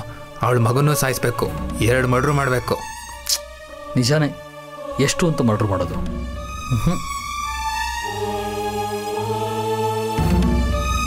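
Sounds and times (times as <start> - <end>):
choir-like chords: 0.0 - 11.0.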